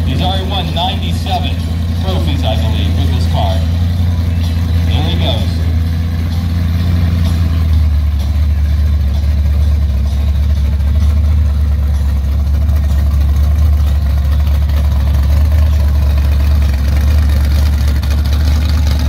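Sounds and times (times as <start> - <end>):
car engine idling loudly: 0.0 - 19.0.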